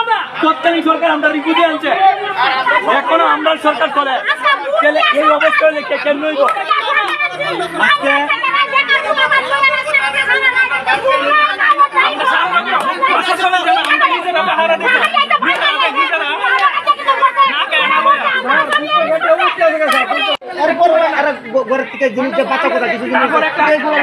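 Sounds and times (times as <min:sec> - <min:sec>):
men talking over one another: 0:00.0 - 0:24.0.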